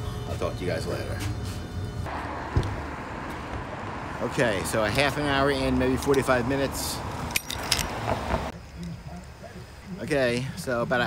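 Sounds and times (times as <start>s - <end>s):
road traffic rumble: 0.0s - 11.0s
thump: 2.5s - 2.9s.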